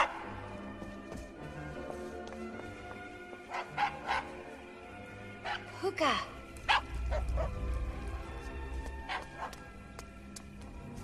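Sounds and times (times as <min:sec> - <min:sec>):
soft orchestral music: 0:00.0 - 0:11.0.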